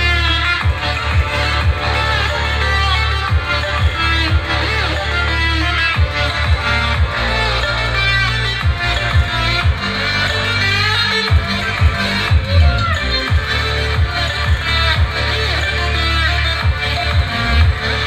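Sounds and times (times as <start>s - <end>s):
song with deep bass and beats: 0.0s - 18.0s.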